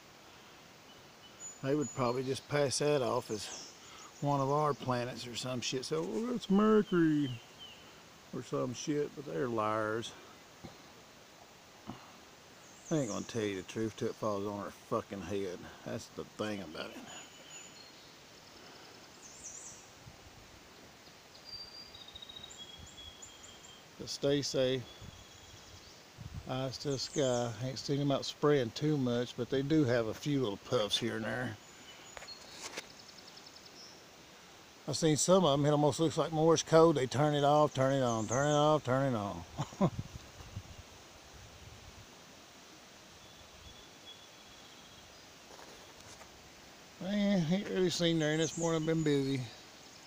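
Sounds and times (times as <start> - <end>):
birds chirping: 0.0 - 41.4, 42.8 - 50.0
even hiss: 0.0 - 50.0
wind on microphone: 25.0 - 26.5, 39.8 - 40.9.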